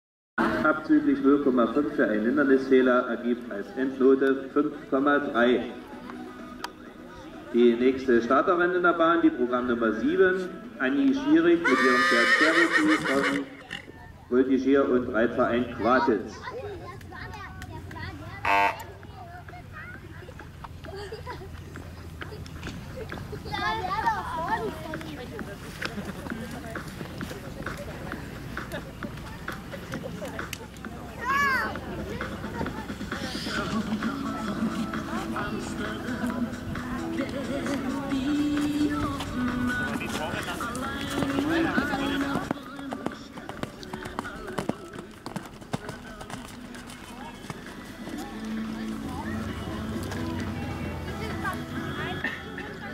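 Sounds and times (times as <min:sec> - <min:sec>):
horse hoofbeats on sand: 0:19.0 - 0:31.0, 0:38.4 - 0:50.6
faint spectator voices: 0:24.4 - 0:52.9.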